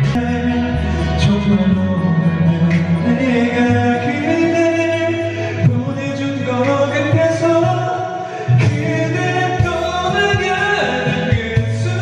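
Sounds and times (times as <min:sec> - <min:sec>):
man singing into a microphone: 0:00.0 - 0:12.0
music backing track: 0:00.0 - 0:12.0.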